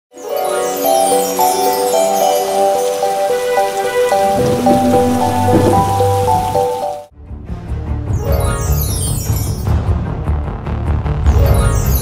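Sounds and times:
plinking melody: 0:00.2 - 0:07.1
rain: 0:00.2 - 0:07.1
low rumble: 0:04.2 - 0:06.9.

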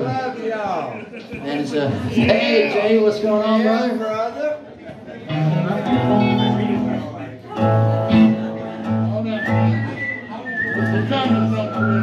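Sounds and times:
room chatter: 0:00.0 - 0:12.0.

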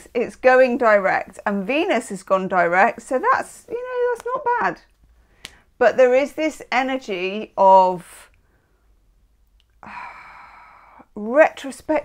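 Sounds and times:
woman sighing: 0:09.8 - 0:11.0.

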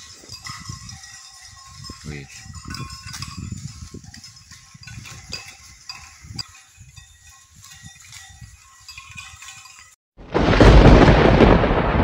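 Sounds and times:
animals rustling through undergrowth: 0:00.0 - 0:10.0.

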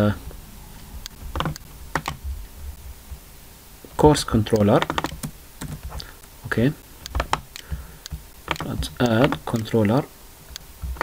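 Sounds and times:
mouse and keyboard clicks: 0:01.0 - 0:02.2, 0:04.5 - 0:06.1, 0:07.0 - 0:09.8.

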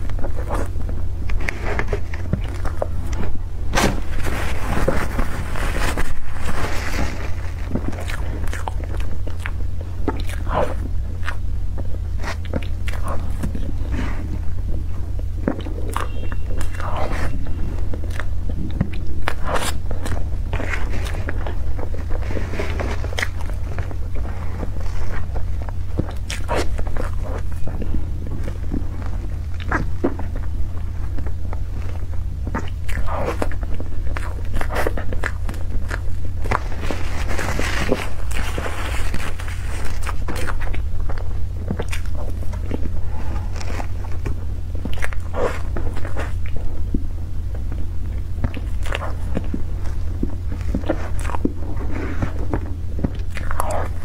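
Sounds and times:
chewing cream cake: 0:00.0 - 0:54.0
steady low hum: 0:00.0 - 0:54.0.

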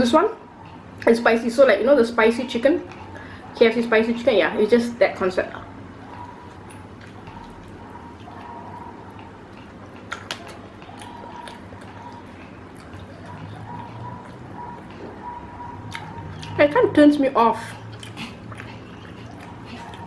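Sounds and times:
steady low hum: 0:00.0 - 0:20.0
wet chewing: 0:02.6 - 0:03.9, 0:05.2 - 0:20.0.

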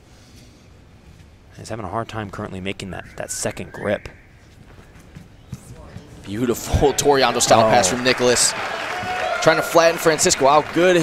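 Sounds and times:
faint arena room noise: 0:00.0 - 0:11.0.

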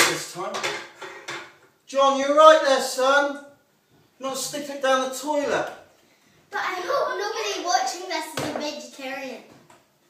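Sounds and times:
child talking: 0:06.5 - 0:09.7.

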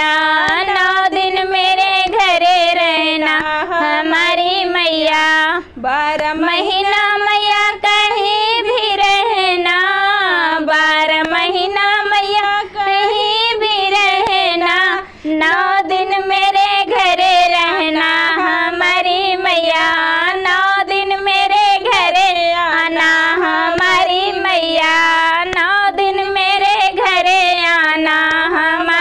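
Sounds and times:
clapping along: 0:00.0 - 0:01.4, 0:03.3 - 0:03.6, 0:11.1 - 0:11.8, 0:14.1 - 0:14.6, 0:23.0 - 0:24.2, 0:24.8 - 0:29.0
women singing devotional song: 0:00.0 - 0:29.0.

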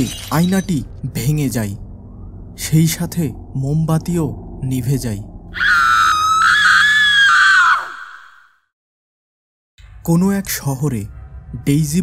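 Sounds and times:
low droning horror music: 0:00.0 - 0:07.2, 0:09.8 - 0:12.0
high-pitched scream: 0:05.5 - 0:08.6.

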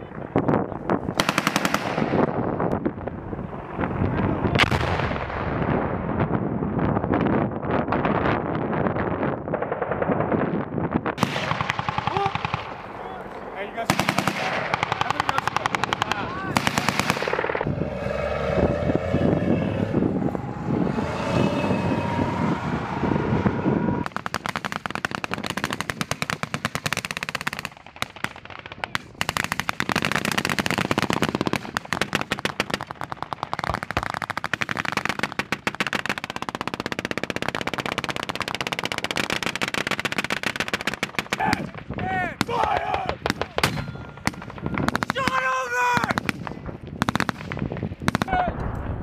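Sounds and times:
machine-gun and rifle fire: 0:01.1 - 0:02.4, 0:11.2 - 0:13.0, 0:13.7 - 0:17.7, 0:24.0 - 0:41.8, 0:46.0 - 0:48.3
people shouting: 0:41.3 - 0:44.1, 0:44.7 - 0:46.2.

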